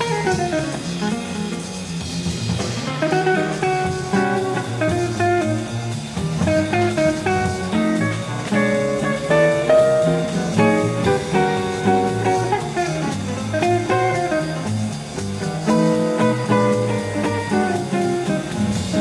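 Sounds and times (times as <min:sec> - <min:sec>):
bass accompaniment: 0:00.0 - 0:19.0
plucked guitar notes: 0:00.0 - 0:19.0.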